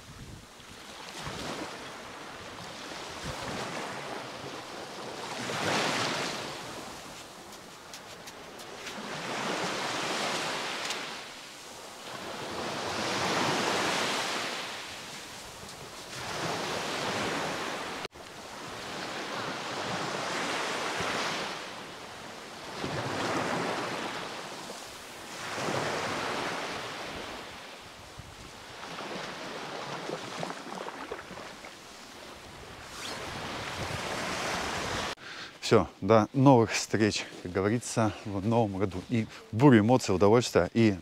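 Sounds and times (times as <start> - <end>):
small waves breaking on beach: 0.0 - 35.2.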